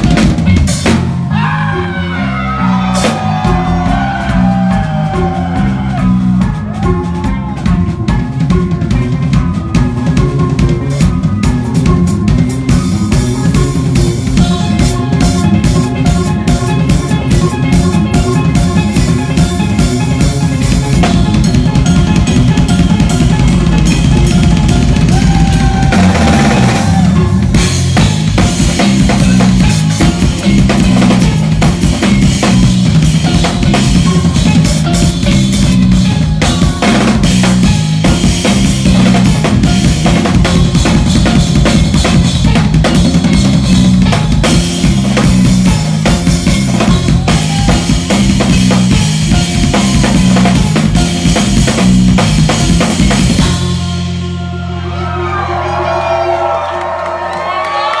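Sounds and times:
drum kit played fast and loud: 0.0s - 54.9s
low pitched bass line: 0.0s - 56.7s.

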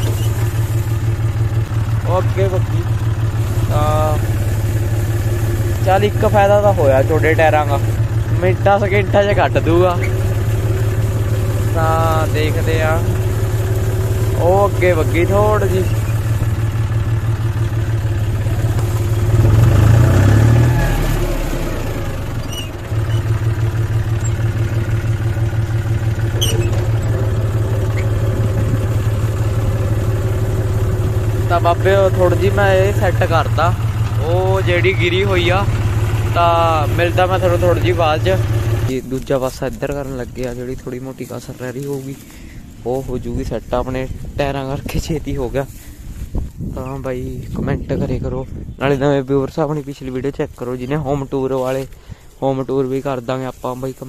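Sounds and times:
tractor diesel engine running: 0.0s - 54.0s
tractor rolling over dry stalks: 0.0s - 54.0s.

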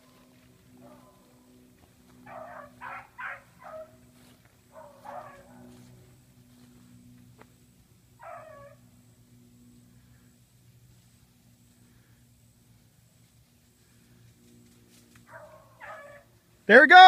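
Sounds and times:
faint dogs baying: 0.0s - 6.9s, 8.2s - 9.0s, 15.2s - 16.4s.

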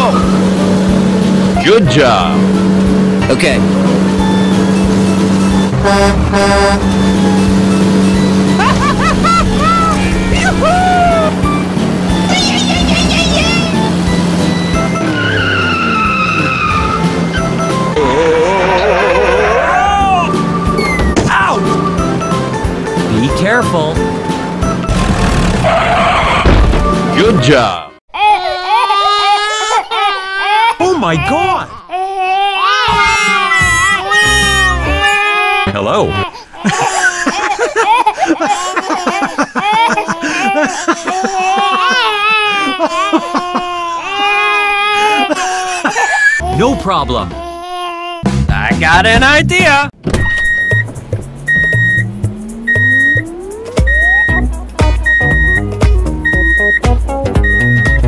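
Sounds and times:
truck engine drone: 0.0s - 27.5s, 48.2s - 58.0s
background music: 0.0s - 27.9s, 32.8s - 36.1s, 50.6s - 58.0s
squeaky chirps and glides: 3.6s - 19.5s, 20.2s - 23.3s, 50.2s - 58.0s
horn-like toot: 5.7s - 7.2s
high-pitched voice crying: 8.6s - 11.4s, 28.2s - 48.2s.

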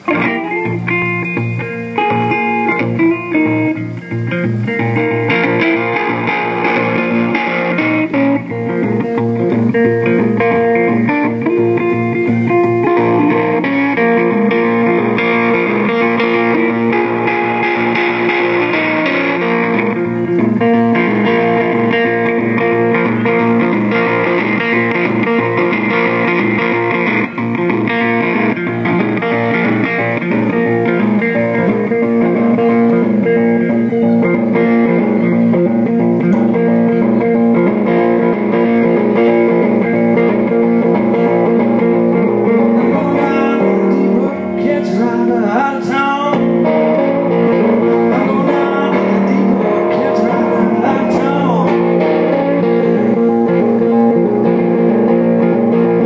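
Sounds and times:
amplified guitar picking: 0.0s - 56.0s.

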